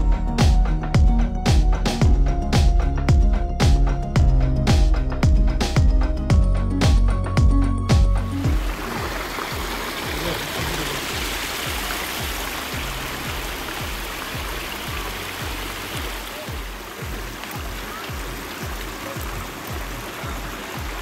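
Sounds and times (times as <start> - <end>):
music with low beat: 0.0 - 21.0
stream running over rocks: 8.4 - 21.0.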